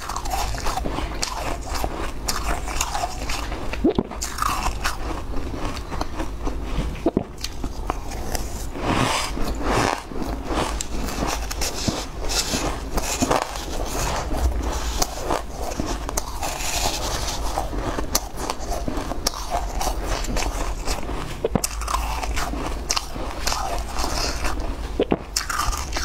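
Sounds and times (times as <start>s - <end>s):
crunching shaved ice: 0.0s - 26.0s.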